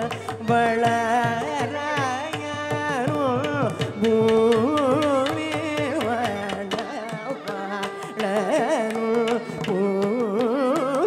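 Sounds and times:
man singing: 0:00.0 - 0:11.0
violin: 0:00.0 - 0:11.0.

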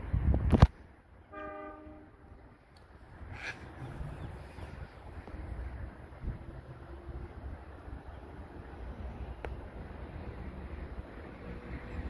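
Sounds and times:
wind on microphone: 0:00.0 - 0:00.8, 0:03.2 - 0:07.6
distant train horn: 0:01.2 - 0:02.4.

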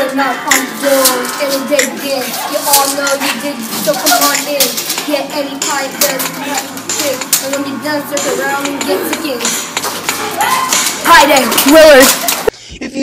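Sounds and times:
child speaking: 0:00.0 - 0:09.5, 0:10.4 - 0:12.3.

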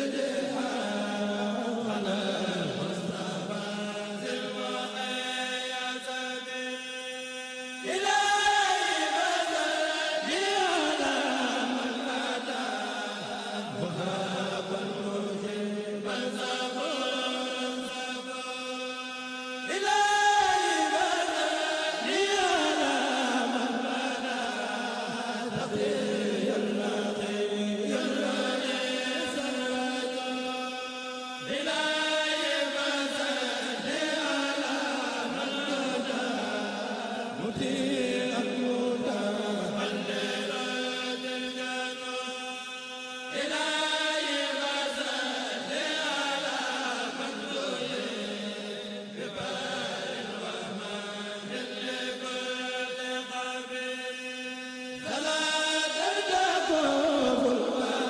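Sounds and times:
men chanting religious poems: 0:00.0 - 0:58.0.

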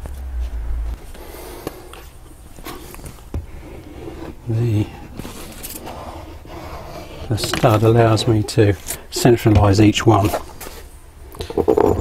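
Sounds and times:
low rumble: 0:00.0 - 0:01.2.

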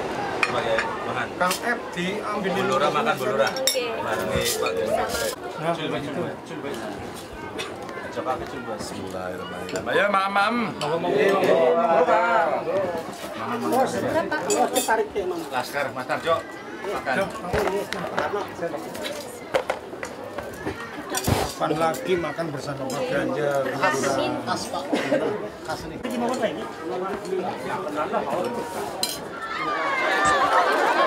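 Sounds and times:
people chatting: 0:00.0 - 0:19.5
people talking: 0:00.0 - 0:19.6
spoons clinking on plates: 0:14.5 - 0:15.0, 0:29.0 - 0:29.3.

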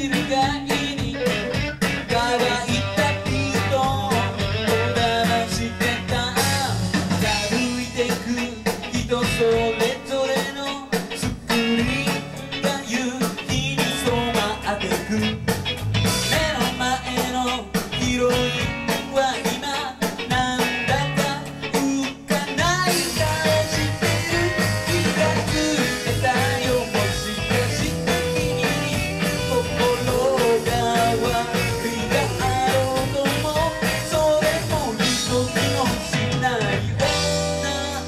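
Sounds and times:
man singing: 0:00.0 - 0:38.0
rock band playing: 0:00.0 - 0:38.0.

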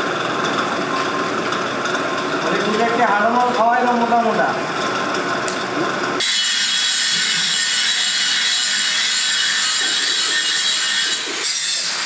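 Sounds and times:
furnace hissing: 0:02.1 - 0:12.0.

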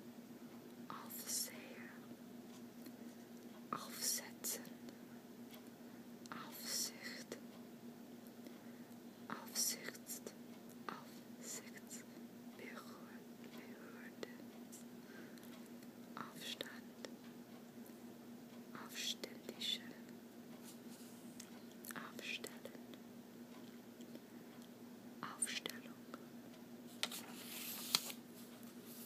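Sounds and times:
steady low hum: 0:00.0 - 0:29.0
person whispering: 0:00.9 - 0:02.1, 0:03.8 - 0:04.8, 0:06.3 - 0:07.4, 0:09.3 - 0:14.4, 0:16.2 - 0:17.1, 0:18.7 - 0:20.1, 0:21.9 - 0:23.0, 0:25.2 - 0:26.2.

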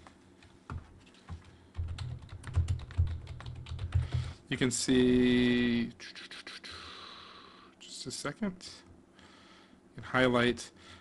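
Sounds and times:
typing on computer keyboard: 0:01.3 - 0:04.3.

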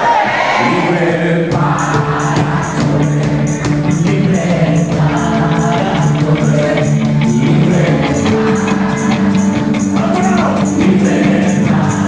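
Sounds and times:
drums: 0:00.0 - 0:12.0
voices singing: 0:00.0 - 0:12.0
electric guitar: 0:01.5 - 0:12.0
steady cymbal or tambourine beat: 0:01.5 - 0:12.0.

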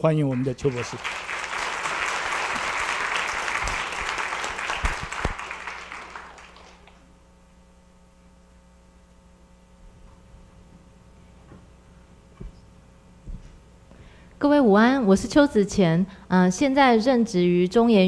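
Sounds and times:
audience applauding: 0:00.0 - 0:07.1
steady hum: 0:00.0 - 0:18.0.

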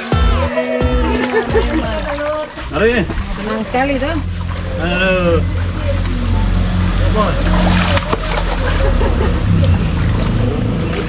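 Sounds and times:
steady low rumble: 0:01.0 - 0:11.0
water splashing and sloshing: 0:01.0 - 0:11.0
feet wading through stream: 0:01.1 - 0:11.0.

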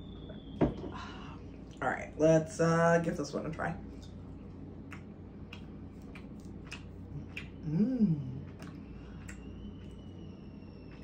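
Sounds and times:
thin high whine: 0:00.0 - 0:04.2, 0:07.1 - 0:11.0
steady low hum: 0:00.0 - 0:11.0.

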